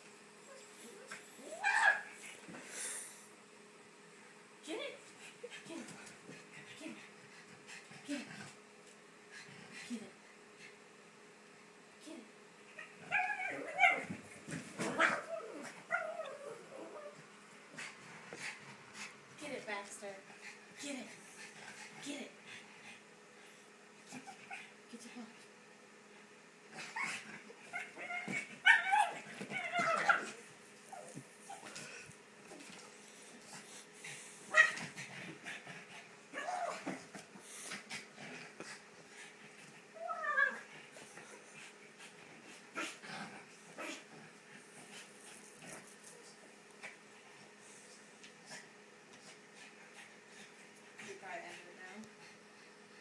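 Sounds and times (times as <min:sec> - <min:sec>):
dog whining and yipping: 0:26.8 - 0:31.6.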